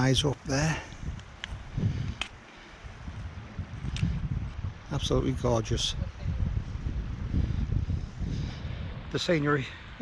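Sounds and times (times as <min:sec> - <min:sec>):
wind buffeting microphone: 0:00.0 - 0:10.0
faint clicks: 0:01.1 - 0:02.4.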